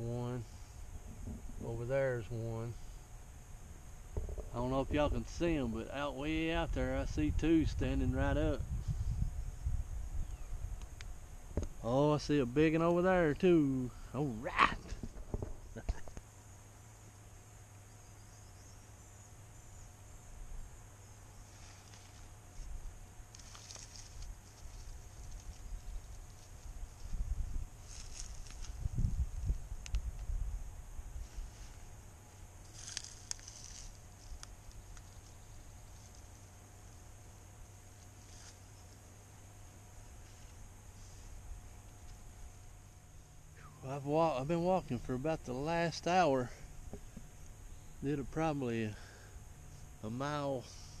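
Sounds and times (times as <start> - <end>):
wind rumble on microphone: 0.9 - 1.8, 6.3 - 11.8, 25.3 - 31.5
leaves and twigs rustling and snapping: 21.5 - 30.4, 31.2 - 37.0, 37.7 - 39.2.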